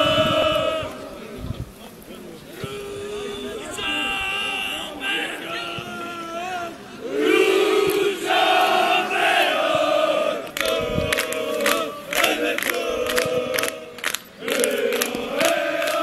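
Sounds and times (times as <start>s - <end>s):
crowd chanting in unison: 0.0s - 1.6s, 2.5s - 16.0s
sharp hand claps: 10.4s - 16.0s.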